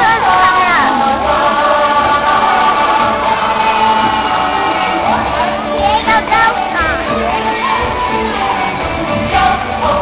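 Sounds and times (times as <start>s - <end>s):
voices singing stage music: 0.0s - 10.0s.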